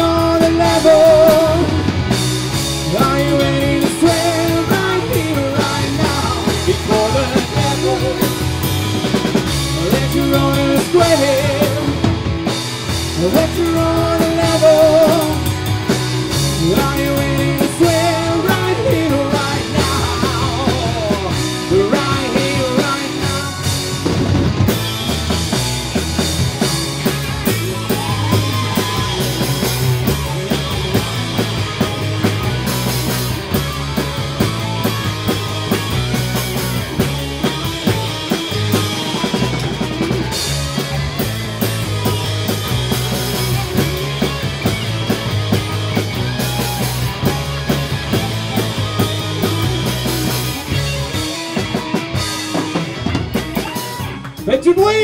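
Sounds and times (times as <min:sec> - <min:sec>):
bass guitar: 0:00.0 - 0:55.0
distorted electric guitars: 0:00.0 - 0:55.0
drum kit steady beat: 0:00.0 - 0:55.0
keyboard: 0:00.0 - 0:55.0.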